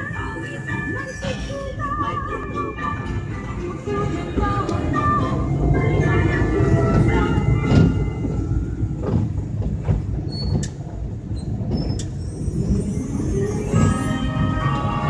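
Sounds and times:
vehicle interior road noise: 3.4 - 12.8.

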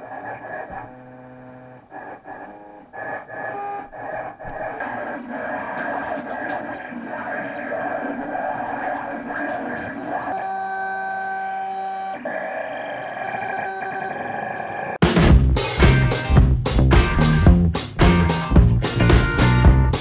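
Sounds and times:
stepper motors whining: 0.0 - 15.0.

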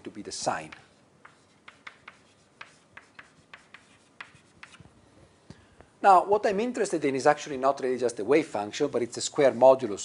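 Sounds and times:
pen or chalk scratching: 1.2 - 4.9.

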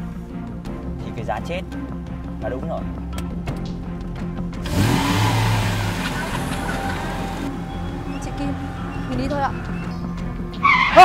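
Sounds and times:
dramatic background music: 0.0 - 11.0
car engine revving: 4.4 - 11.0
rushing noise of speeding car: 4.6 - 11.0.

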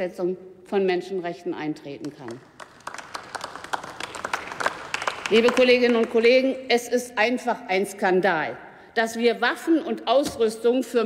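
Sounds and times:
group clapping: 2.0 - 6.4.

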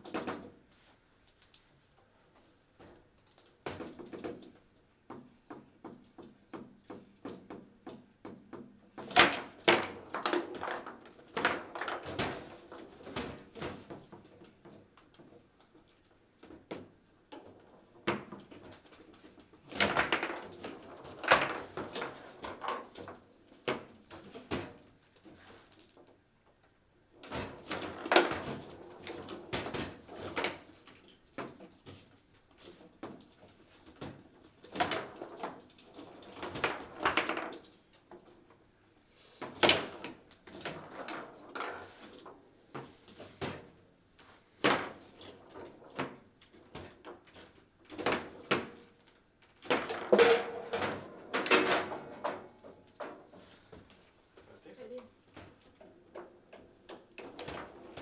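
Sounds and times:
foosball rods clacking: 49.6 - 53.8
foosball ball cracking: 49.7 - 52.5.

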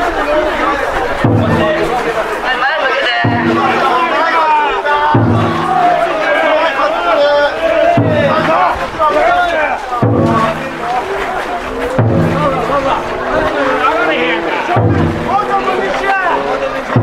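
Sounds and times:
crowd chanting and calling: 0.0 - 17.0
taiko drum booming: 1.1 - 15.9.

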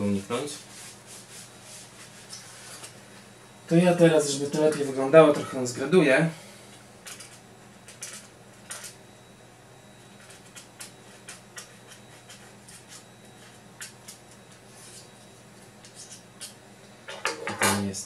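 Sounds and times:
low steady hum: 0.0 - 18.0.

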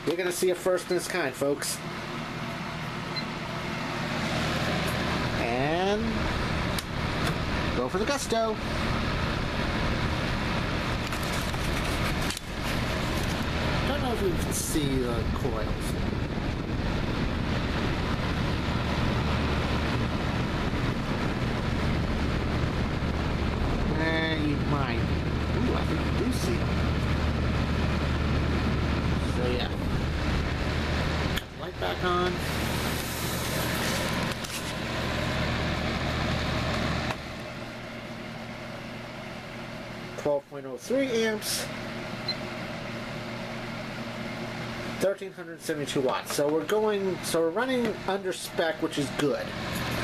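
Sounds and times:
fan heater air rush: 0.0 - 50.0
low motor hum: 1.8 - 40.2.

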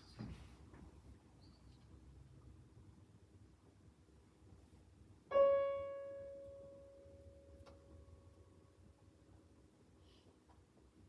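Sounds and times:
high piano note ringing: 5.3 - 8.2.

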